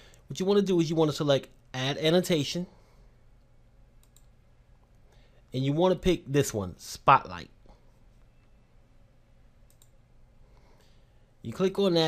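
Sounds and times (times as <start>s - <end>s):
computer mouse click: 4.0s - 5.0s, 9.6s - 10.0s.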